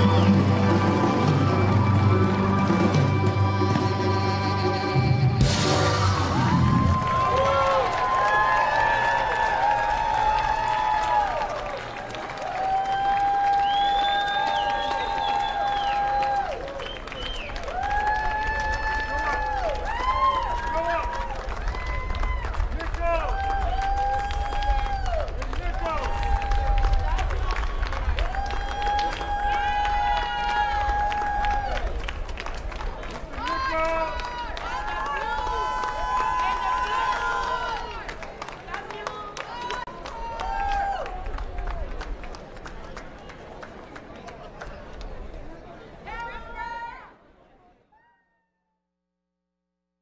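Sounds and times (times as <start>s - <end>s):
voices singing long held notes: 0.0s - 6.4s.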